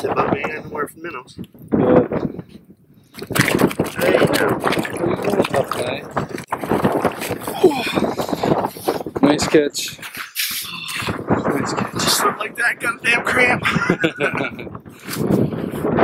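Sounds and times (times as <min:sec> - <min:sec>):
indistinct voices talking: 0:09.2 - 0:14.3.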